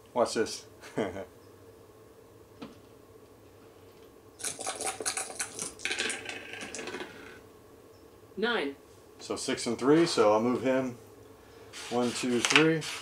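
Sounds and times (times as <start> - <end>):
dice rattling sound effect: 4.5 - 7.2.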